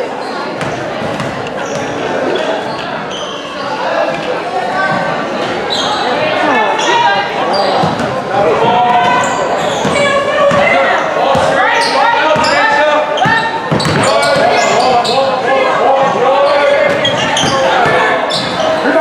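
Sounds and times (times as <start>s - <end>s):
crowd voices in large hall: 0.0s - 19.0s
basketball dribbling on court: 13.2s - 14.6s.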